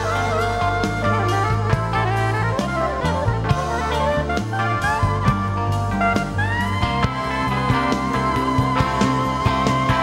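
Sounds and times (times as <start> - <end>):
bass line: 0.0 - 10.0
guitar: 0.0 - 10.0
keyboards: 0.0 - 10.0
saxophone lead melody: 0.0 - 10.0.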